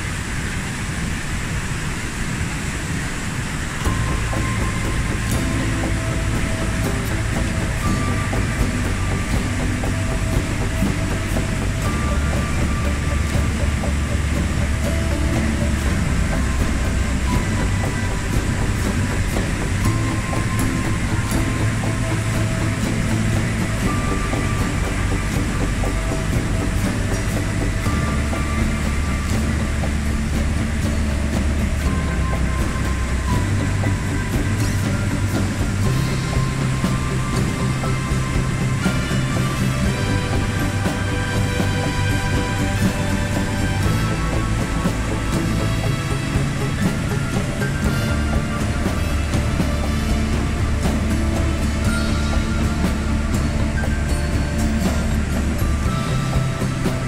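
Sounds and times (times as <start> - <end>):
slow music with deep bass: 0.0 - 57.0
white water roaring: 0.0 - 57.0.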